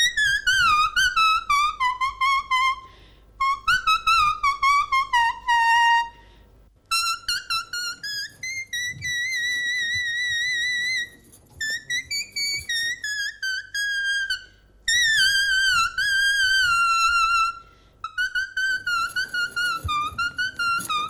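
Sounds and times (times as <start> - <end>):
toy whistle-flute melody: 0.0 - 2.8, 3.4 - 6.1, 6.9 - 21.0.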